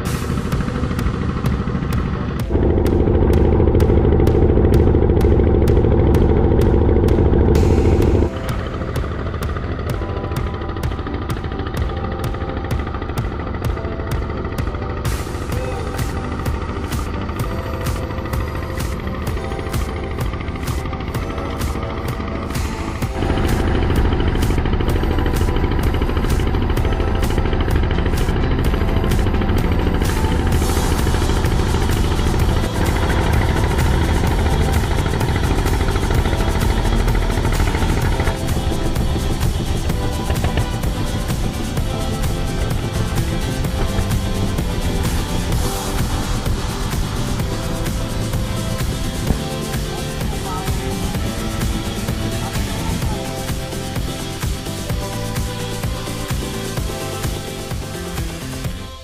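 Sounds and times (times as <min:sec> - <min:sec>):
background music with steady beat: 0:00.0 - 0:59.0
boat engine running: 0:00.0 - 0:59.0.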